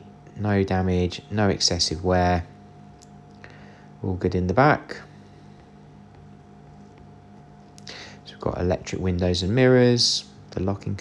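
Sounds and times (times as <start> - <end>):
faint thin whine: 0.0 - 11.0
person breathing: 3.4 - 4.0, 7.8 - 8.3
person speaking: 7.8 - 11.0.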